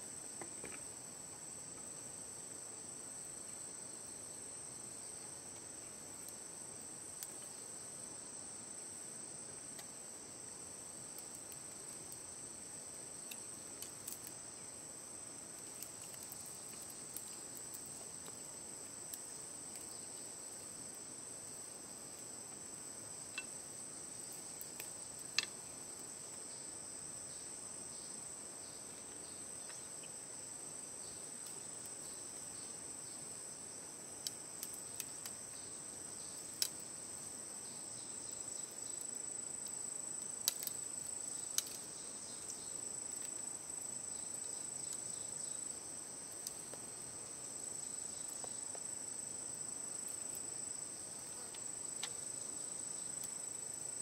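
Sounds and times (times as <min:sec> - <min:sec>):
insects chorus: 0:00.0 - 0:54.0
bamboo strips clicking and snapping: 0:40.4 - 0:40.8, 0:41.5 - 0:41.8.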